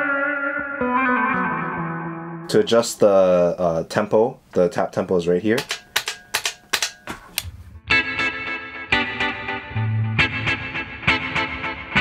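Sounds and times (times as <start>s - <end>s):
electric guitar chords with delay: 0.0s - 2.5s, 7.8s - 12.0s.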